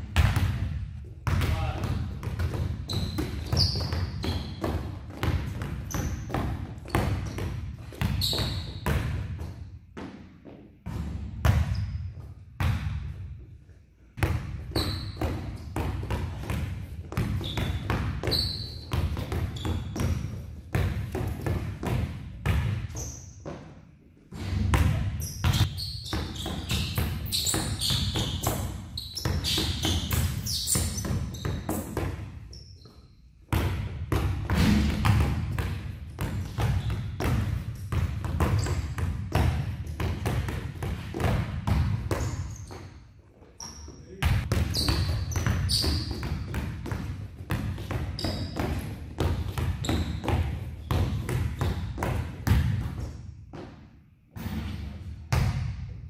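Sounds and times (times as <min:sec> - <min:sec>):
basketballs bouncing on gym floor: 0:00.0 - 0:13.4, 0:14.2 - 0:56.0.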